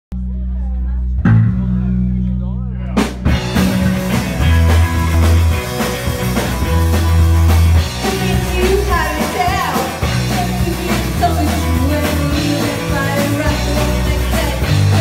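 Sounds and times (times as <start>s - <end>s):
rock band playing: 1.0s - 15.0s.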